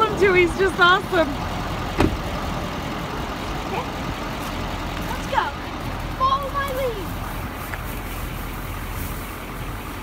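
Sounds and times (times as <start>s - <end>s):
roadside vehicle rumble and hiss: 0.0s - 10.0s.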